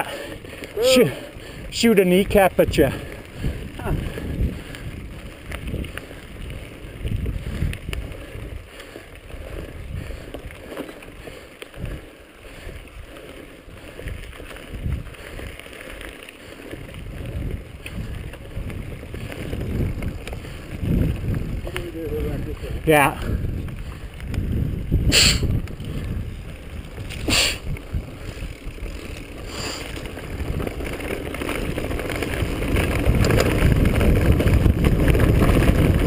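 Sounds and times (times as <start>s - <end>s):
wind on microphone: 0.0s - 15.6s, 16.4s - 36.0s
bike rattling: 0.0s - 36.0s
bike tyres rumbling on dirt: 0.0s - 36.0s.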